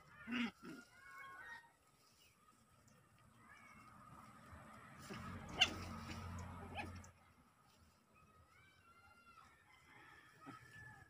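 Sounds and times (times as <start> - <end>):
puppies play-fighting: 0.0 - 8.8
sharp high puppy yip: 5.4 - 5.9.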